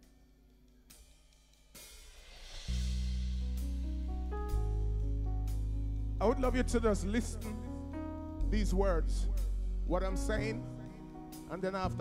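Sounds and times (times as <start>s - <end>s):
band holding low chord: 2.7s - 12.0s.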